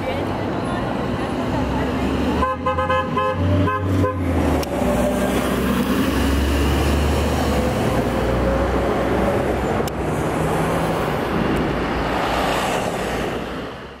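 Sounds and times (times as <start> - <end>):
traffic noise: 0.0 - 14.0
bus diesel engine pulling away: 4.3 - 12.1.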